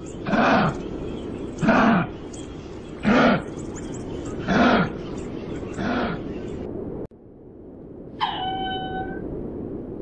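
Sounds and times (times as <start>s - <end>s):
kangaroo grunting: 0.2s - 0.8s, 1.6s - 2.2s, 3.0s - 3.6s.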